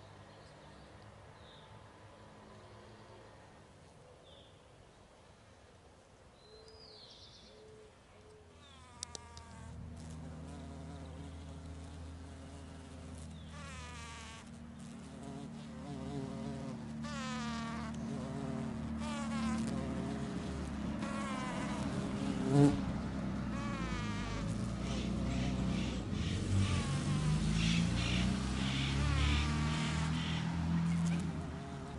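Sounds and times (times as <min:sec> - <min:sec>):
bee buzzing: 0:08.6 - 0:31.9
birds calling: 0:24.7 - 0:31.4.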